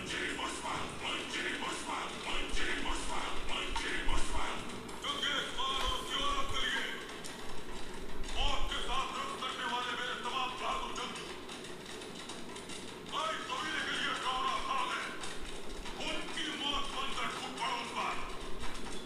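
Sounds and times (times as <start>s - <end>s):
man speaking: 0.0s - 7.1s, 8.3s - 11.3s, 13.1s - 15.3s, 16.0s - 18.4s
background music: 0.0s - 18.7s.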